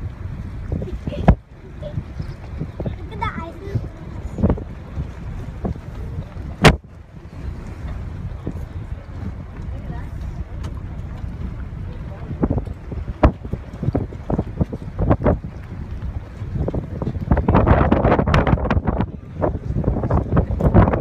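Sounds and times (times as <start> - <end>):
boat engine rumble: 0.0 - 21.0
wind buffeting microphone: 0.0 - 21.0.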